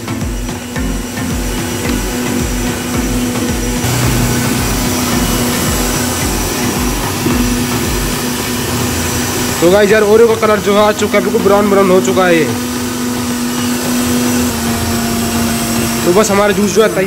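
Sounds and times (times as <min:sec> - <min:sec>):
mixer grinder running: 0:00.0 - 0:17.0.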